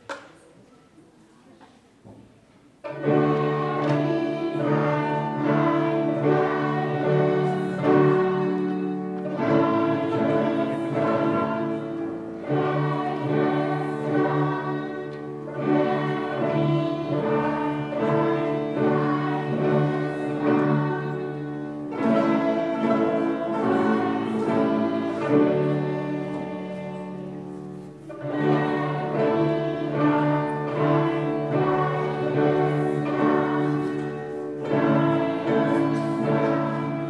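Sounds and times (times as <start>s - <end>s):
violins playing in unison: 2.9s - 37.0s.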